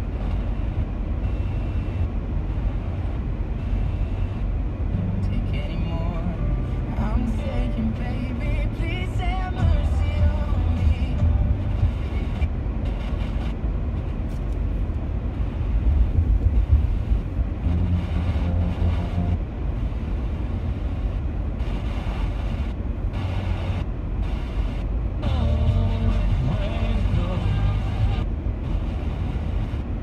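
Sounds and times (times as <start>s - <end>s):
car driving interior rumble: 0.0s - 30.0s.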